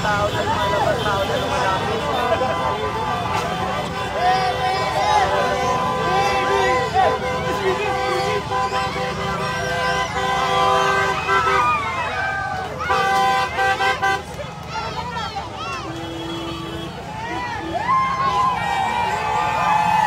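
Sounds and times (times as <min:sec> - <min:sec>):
vehicle horns honking: 0:00.0 - 0:12.0, 0:12.6 - 0:14.4, 0:15.8 - 0:17.9
crowd shouting and cheering: 0:00.0 - 0:20.0.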